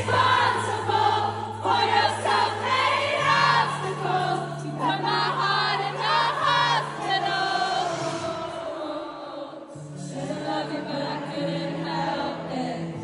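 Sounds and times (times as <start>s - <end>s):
crowd singing along: 0.0s - 13.0s
live pop song: 0.0s - 13.0s
woman singing lead vocal: 0.0s - 13.0s.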